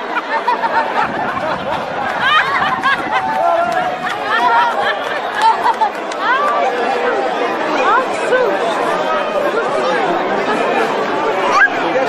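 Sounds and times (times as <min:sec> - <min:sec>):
people talking over one another: 0:00.0 - 0:12.0.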